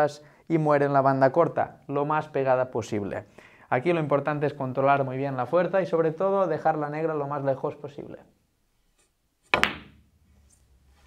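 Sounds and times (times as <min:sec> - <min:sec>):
cue tip striking ball: 0:09.5 - 0:10.0
pool balls clacking: 0:09.6 - 0:10.0.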